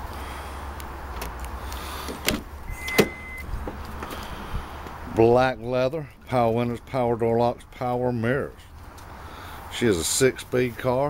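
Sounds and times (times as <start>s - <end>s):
car door latch click: 2.1s - 3.4s
car door clunk: 2.1s - 4.2s
brief high steady tone: 2.7s - 3.4s.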